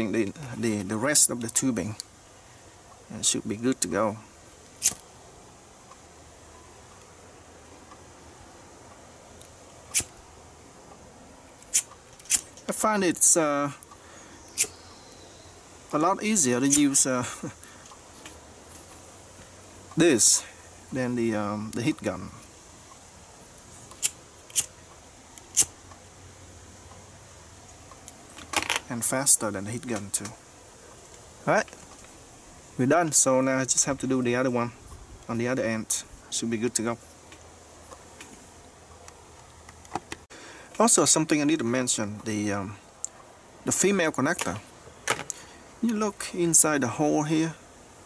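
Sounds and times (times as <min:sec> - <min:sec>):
faint steady background noise: 0:00.0 - 0:48.0
torch lighter clicks: 0:04.8 - 0:05.0, 0:23.9 - 0:24.7, 0:25.4 - 0:25.7.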